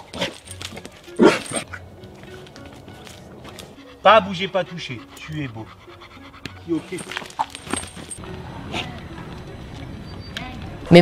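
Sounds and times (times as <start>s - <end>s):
background music: 0.0s - 10.1s
dog barking: 1.2s - 1.8s
dog yelp: 1.2s - 1.8s.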